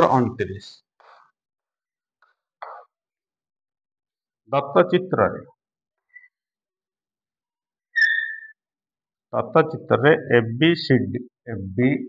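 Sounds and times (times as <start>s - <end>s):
chalk squeaking on a blackboard: 8.0s - 8.6s.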